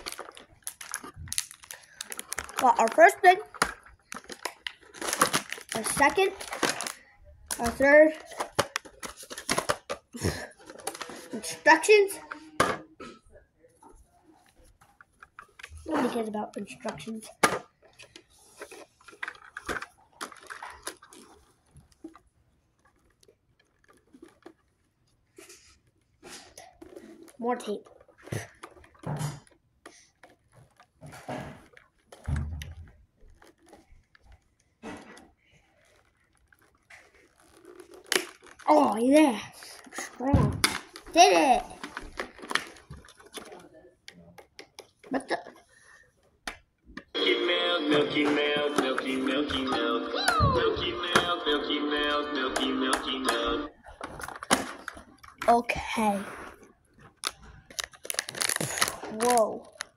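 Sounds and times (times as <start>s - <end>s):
packing tape ripping: 0.0s - 7.7s, 35.8s - 38.7s, 57.2s - 59.9s
packaging rustling: 0.0s - 11.4s, 17.8s - 43.7s, 56.5s - 59.9s.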